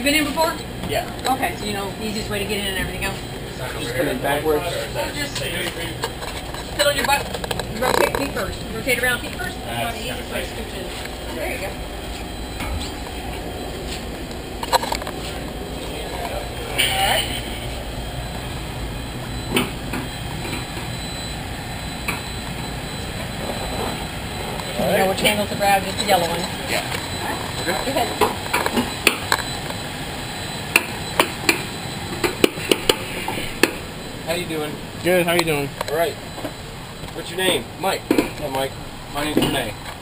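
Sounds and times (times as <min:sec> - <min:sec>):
low mechanical rumble: 0:00.0 - 0:40.0.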